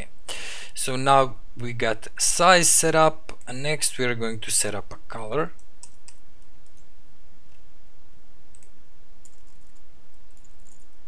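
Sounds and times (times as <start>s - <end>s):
steady low hum: 0.0s - 11.0s
keyboard keys clicking: 8.5s - 10.9s.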